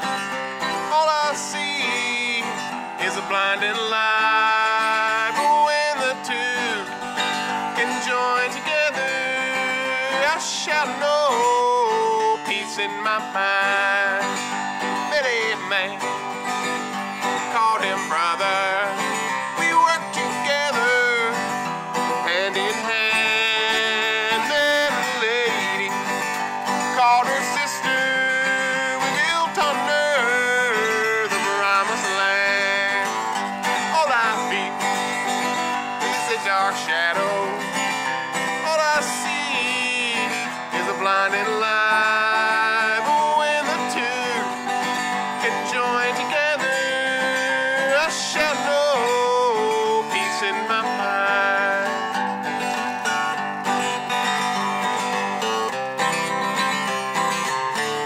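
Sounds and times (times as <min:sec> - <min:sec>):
acoustic guitar strumming: 0:00.0 - 0:58.0
man singing: 0:00.0 - 0:58.0.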